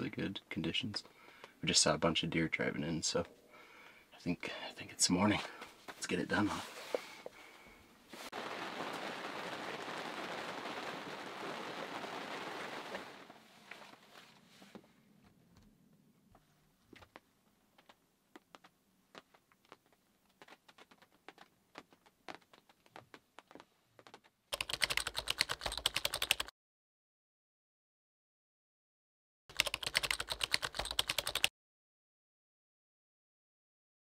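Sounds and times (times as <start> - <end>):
steady hiss: 8.1 - 14.0.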